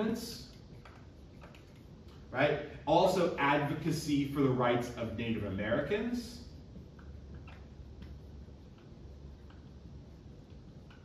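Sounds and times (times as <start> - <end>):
marker squeaking on whiteboard: 0.1 - 2.3, 6.3 - 11.0.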